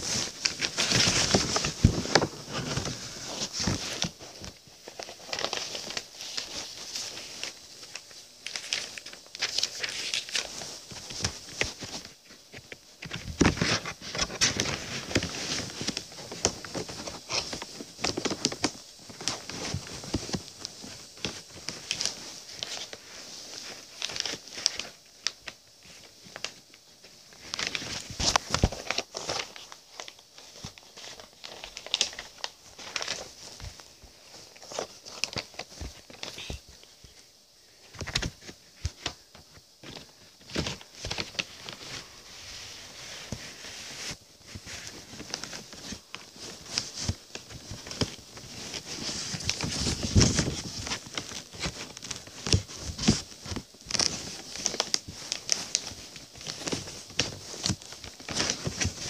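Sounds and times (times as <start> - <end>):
rustling and crinkling at microphone: 0.0 - 59.0.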